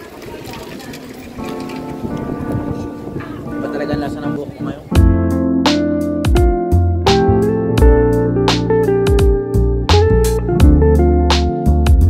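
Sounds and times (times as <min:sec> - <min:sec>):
wind buffeting microphone: 0:00.0 - 0:05.4.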